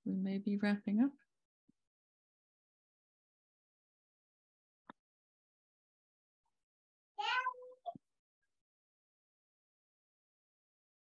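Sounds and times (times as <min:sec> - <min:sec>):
cat meowing: 0:07.2 - 0:07.8.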